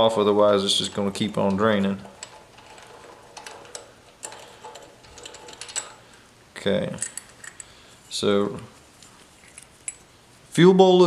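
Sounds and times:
small metallic clicks: 1.5 - 6.2, 6.9 - 7.8.

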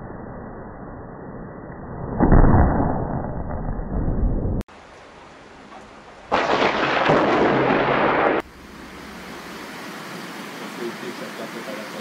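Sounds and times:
steady hiss: 4.7 - 12.0
thunder crack and rumble: 6.0 - 8.5.

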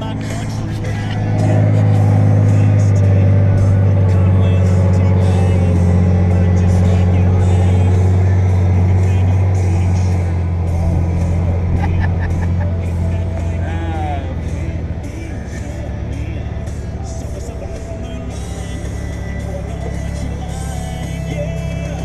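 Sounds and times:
vehicle engine idling: 0.0 - 22.0.

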